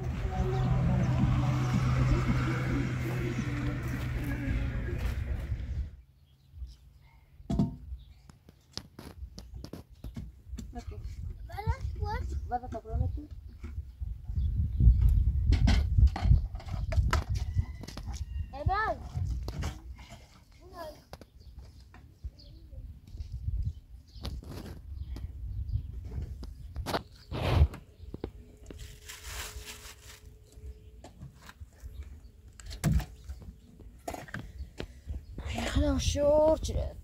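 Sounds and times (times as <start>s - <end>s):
low rumble: 0.0s - 6.0s.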